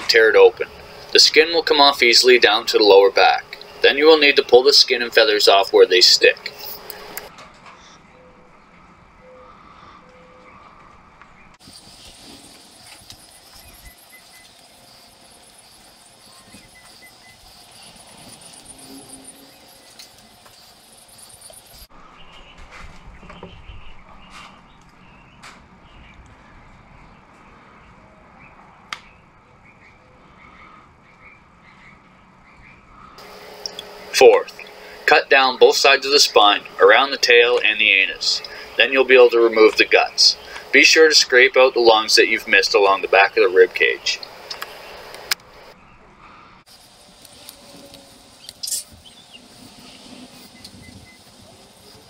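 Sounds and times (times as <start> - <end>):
faint chirping: 11.6 - 21.9, 32.9 - 46.0, 46.7 - 52.0.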